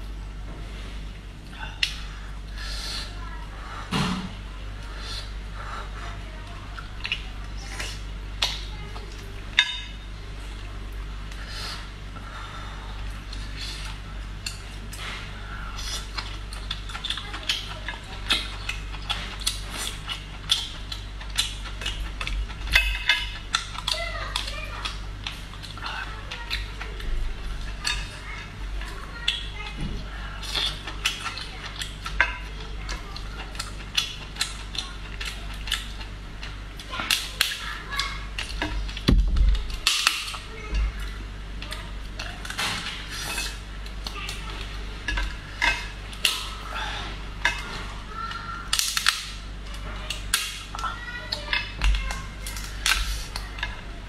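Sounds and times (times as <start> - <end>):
eating mouth sounds: 28.8 - 39.1, 41.8 - 51.6
shell cracking and snapping: 48.7 - 49.5, 52.1 - 53.7.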